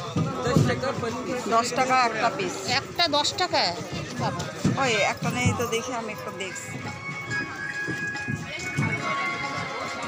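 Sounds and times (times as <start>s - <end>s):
crowd voices talking: 0.0s - 10.0s
music from loudspeakers: 6.5s - 10.0s.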